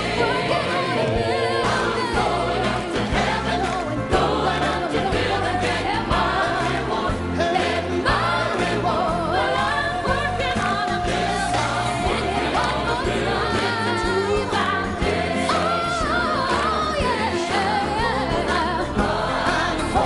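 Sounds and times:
gospel singing over a band: 0:00.0 - 0:20.0.

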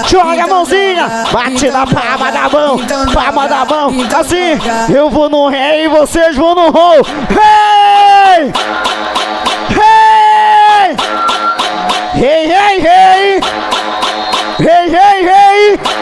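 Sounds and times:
electronic dance music: 0:00.0 - 0:16.0.

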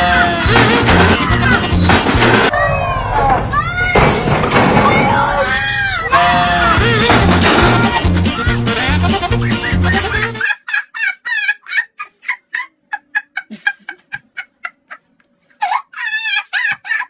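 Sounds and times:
chickens clucking: 0:06.2 - 0:10.8
loud music with steady beat: 0:06.7 - 0:10.4.

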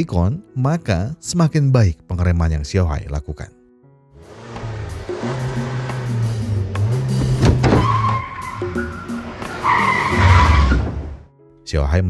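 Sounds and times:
car engine accelerating: 0:04.2 - 0:11.2
tyres squealing: 0:04.3 - 0:11.2.

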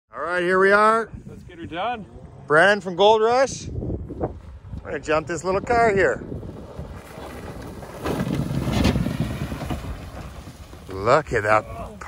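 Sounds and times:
car engine rumbling: 0:01.2 - 0:12.0.

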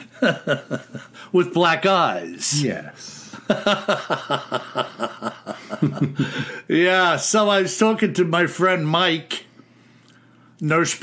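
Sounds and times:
man chuckling: 0:03.4 - 0:06.7.

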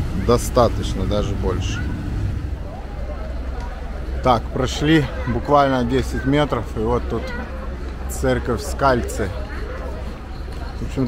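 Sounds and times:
faint voices: 0:00.0 - 0:11.0
motorboat engines rumbling: 0:00.0 - 0:11.0.

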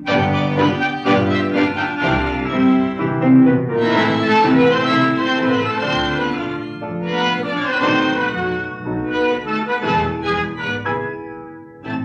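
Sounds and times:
tango played by violins and bandoneons: 0:00.0 - 0:12.0.

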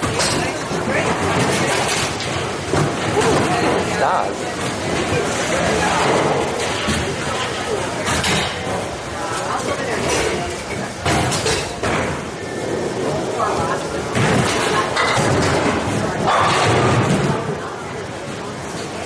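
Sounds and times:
bowling balls striking pins: 0:14.0 - 0:17.6.

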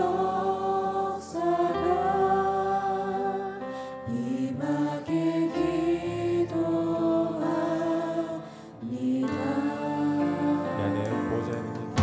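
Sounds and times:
group singing praise song: 0:00.0 - 0:11.2.

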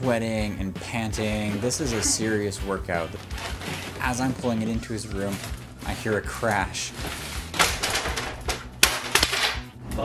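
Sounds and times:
photo frame crashing and breaking: 0:07.0 - 0:09.6.

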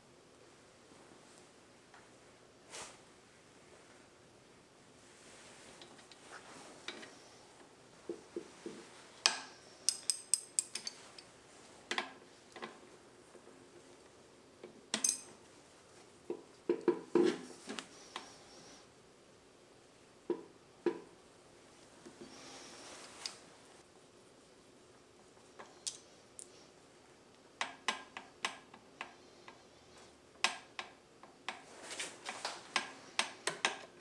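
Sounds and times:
metal tools clinking: 0:15.0 - 0:15.3.

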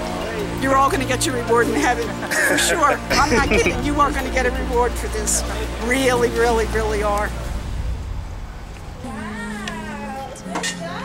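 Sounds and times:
low hum: 0:06.4 - 0:10.2.

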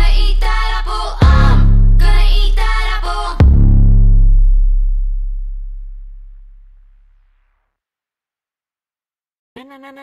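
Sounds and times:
deep electronic bass note: 0:00.0 - 0:07.4.

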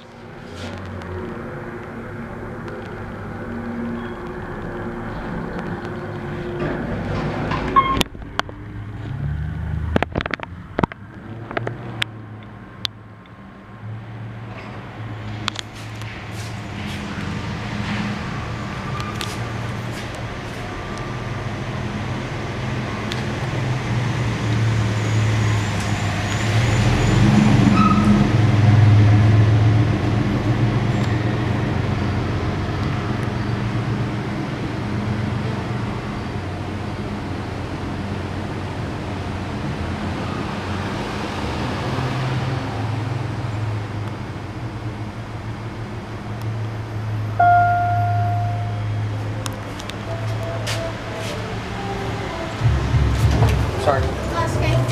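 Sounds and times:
low rumble of vehicles: 0:00.0 - 0:54.9
elevator electronic chime: 0:07.8 - 0:08.1, 0:47.4 - 0:49.1.

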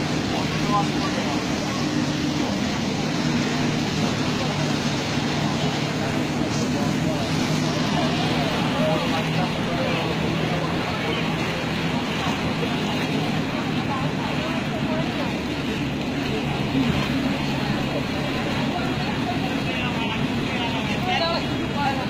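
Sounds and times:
indistinct voices: 0:00.0 - 0:22.0
rain on a street: 0:00.0 - 0:22.0.

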